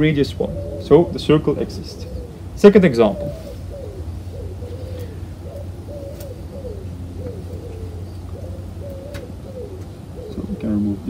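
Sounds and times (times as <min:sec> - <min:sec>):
dove cooing: 0:00.0 - 0:11.0
steady low hum: 0:00.0 - 0:11.0.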